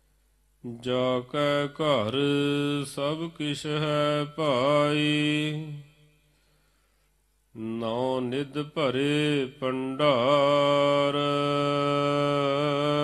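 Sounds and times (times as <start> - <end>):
man chanting melodically: 0.6 - 6.0, 7.6 - 13.0.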